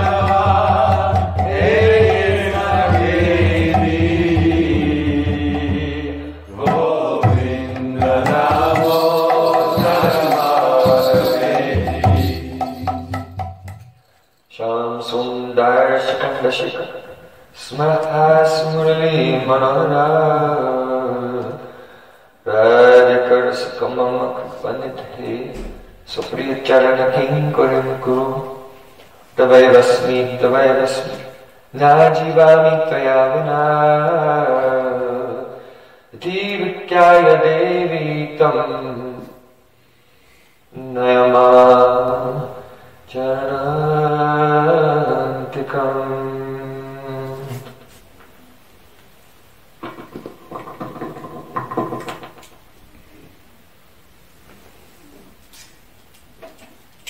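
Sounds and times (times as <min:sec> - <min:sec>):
man chanting: 0:00.0 - 0:13.0, 0:14.5 - 0:21.7, 0:22.5 - 0:28.7, 0:29.4 - 0:39.4, 0:40.7 - 0:47.8.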